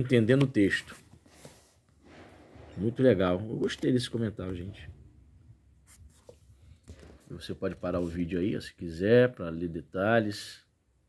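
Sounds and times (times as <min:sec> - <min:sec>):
book page rustling: 0:05.8 - 0:08.2.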